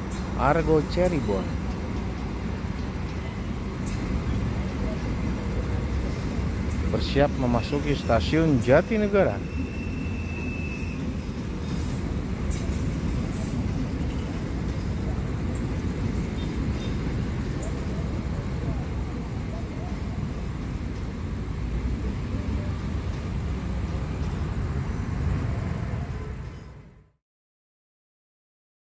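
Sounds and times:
train wheels rumbling on rail: 0.0 - 27.1.

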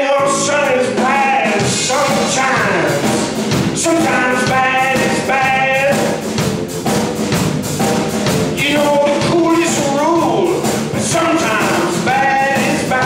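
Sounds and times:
bass: 0.0 - 13.0
blues band playing: 0.0 - 13.0
drums: 0.0 - 13.0
lead line of held notes: 0.1 - 13.0.

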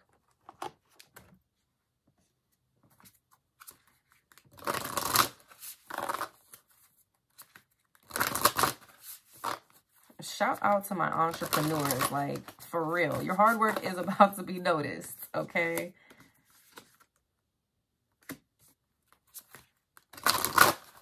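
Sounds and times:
cards being shuffled: 2.9 - 10.2, 11.3 - 14.2, 15.7 - 17.2, 18.2 - 21.0.

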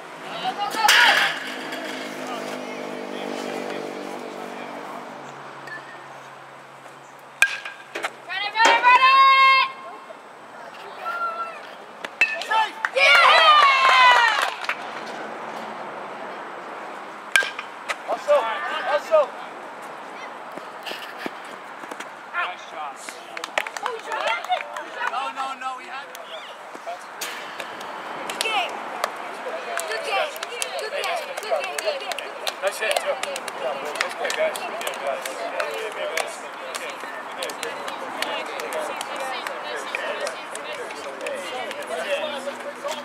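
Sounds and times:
people shouting and calling: 0.3 - 2.0, 8.3 - 10.2, 10.8 - 14.6, 18.1 - 19.4
ball hitting bat or glove: 7.4 - 8.8, 17.4 - 17.7.

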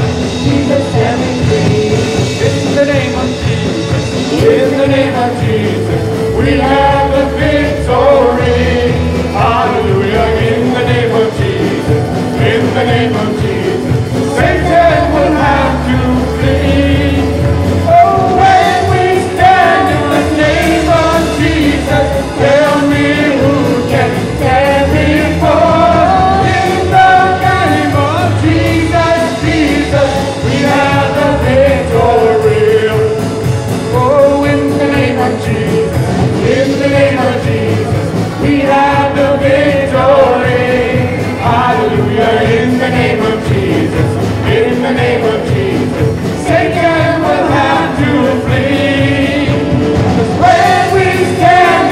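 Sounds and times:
bass guitar: 0.0 - 51.9
drums keeping a beat: 0.0 - 51.9
electric guitars: 0.0 - 51.9
singers singing together: 0.0 - 51.9
worship band performing: 0.0 - 51.9.

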